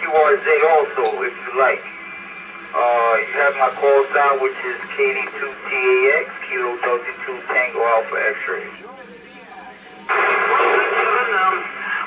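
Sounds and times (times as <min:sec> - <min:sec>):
muffled voice over radio: 0:00.0 - 0:02.0, 0:02.7 - 0:12.0
radio static hiss: 0:00.0 - 0:12.0.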